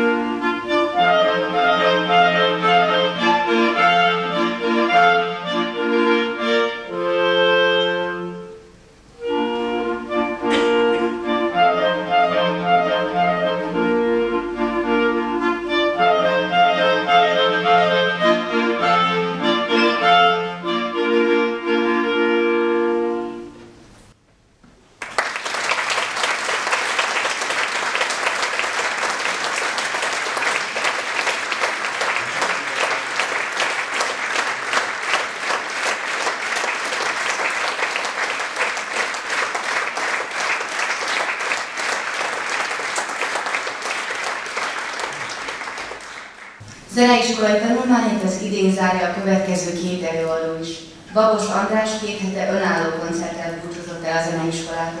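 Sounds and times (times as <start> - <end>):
clarinet quartet playing: 0.0 - 23.8
audience applauding: 24.9 - 46.6.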